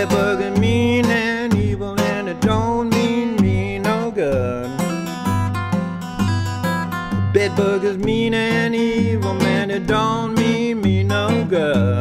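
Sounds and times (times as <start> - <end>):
fingerpicked acoustic blues guitar: 0.0 - 12.0.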